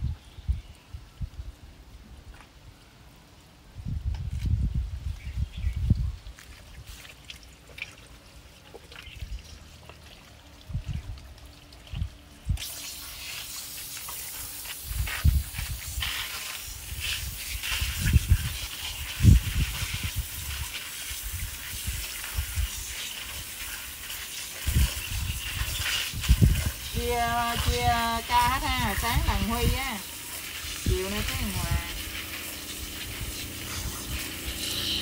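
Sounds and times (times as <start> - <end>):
water running from hose: 4.3 - 35.0.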